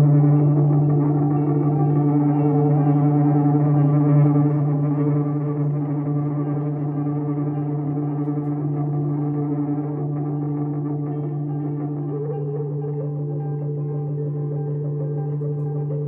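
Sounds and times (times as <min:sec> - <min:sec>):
experimental drone music: 0:00.0 - 0:16.0.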